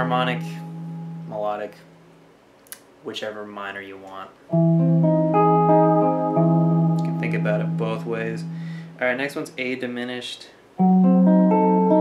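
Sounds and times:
electric guitar picked chord: 4.5s - 9.0s.

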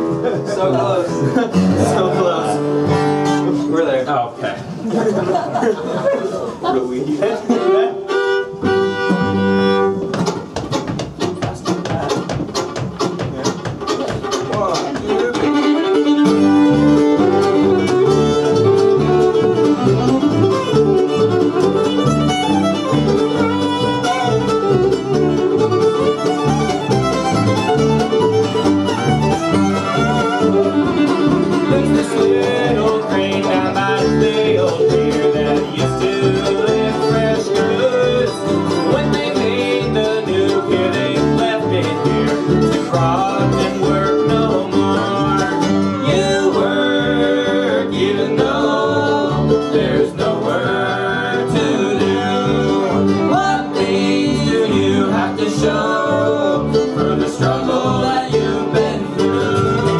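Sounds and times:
bluegrass band playing: 0.0s - 59.9s.

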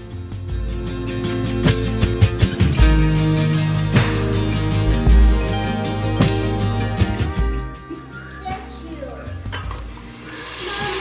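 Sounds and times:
quiet background music: 3.0s - 11.0s.

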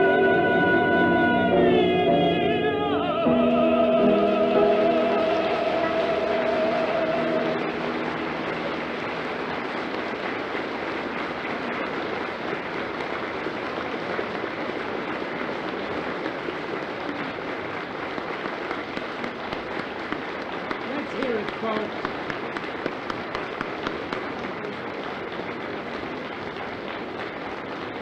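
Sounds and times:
audience applause: 3.2s - 28.0s.

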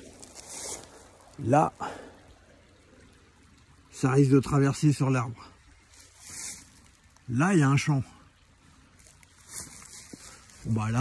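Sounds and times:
footsteps in dry leaves: 0.0s - 1.4s, 5.9s - 7.2s, 8.9s - 11.0s.

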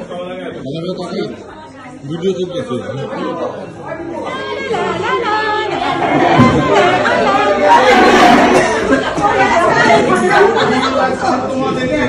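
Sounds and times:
overlapping party chatter: 0.0s - 12.0s.

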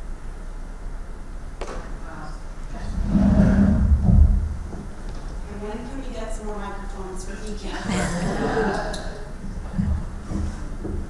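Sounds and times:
microphone handling rumble: 2.6s - 5.8s, 9.3s - 11.0s.

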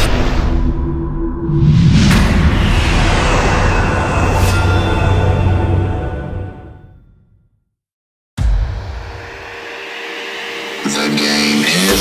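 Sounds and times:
electronic music: 9.0s - 12.0s.

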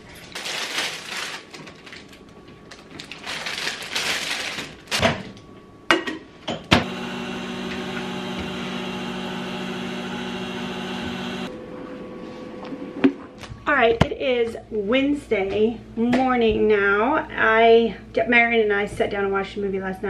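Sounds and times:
packaging rustling: 0.0s - 5.4s
microwave oven humming: 6.6s - 13.6s.

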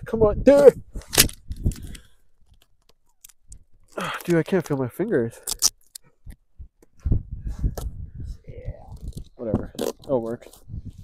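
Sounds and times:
adhesive tape ripping: 5.4s - 5.9s.

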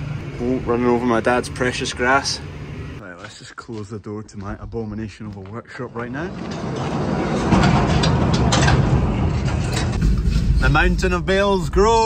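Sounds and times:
metal sliding door rattling on track: 6.3s - 10.6s.

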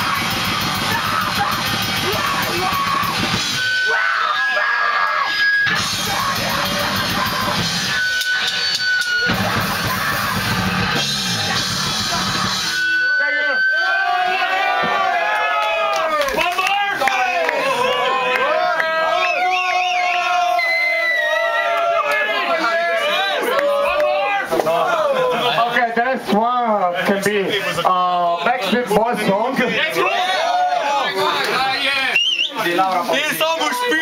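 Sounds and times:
rock band playing loudly: 0.0s - 13.7s
crowd singing and shouting: 0.0s - 15.8s.

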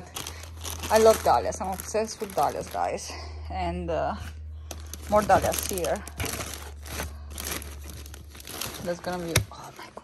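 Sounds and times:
plastic bags and paper crinkling: 0.0s - 3.3s, 4.6s - 10.0s.

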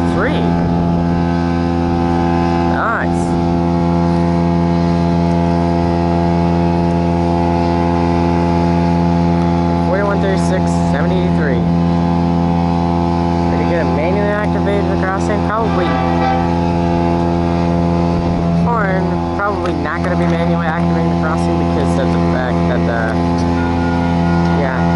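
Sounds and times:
deep hum: 0.0s - 24.9s
large engine droning: 0.0s - 24.9s.

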